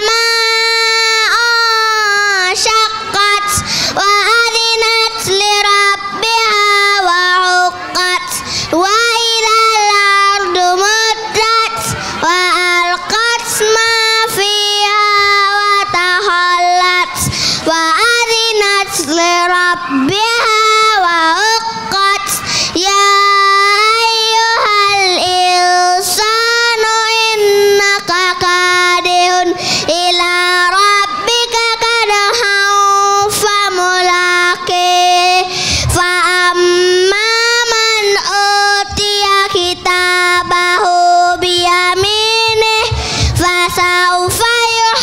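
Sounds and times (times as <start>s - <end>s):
boy chanting through microphone: 0.0s - 45.0s.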